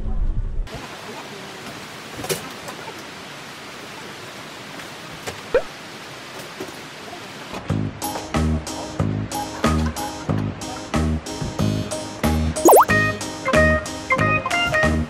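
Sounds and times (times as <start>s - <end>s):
steady outdoor hiss: 0.7s - 9.6s.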